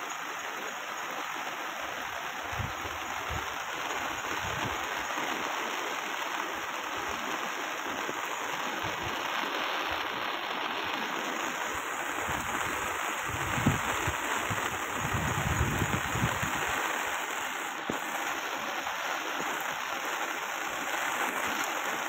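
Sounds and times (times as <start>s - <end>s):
rushing river: 0.0s - 22.0s
low rumbling gusts: 12.2s - 16.6s.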